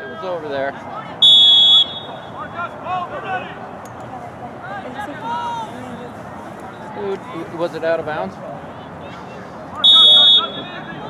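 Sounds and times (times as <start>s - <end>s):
spectators' voices: 0.0s - 11.0s
referee whistle blast: 1.2s - 2.4s, 9.8s - 10.8s.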